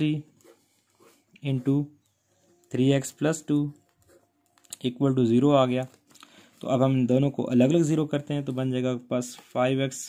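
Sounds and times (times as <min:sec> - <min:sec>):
pen scratching on paper: 0:00.0 - 0:02.2, 0:03.7 - 0:04.5
person speaking: 0:00.0 - 0:10.0.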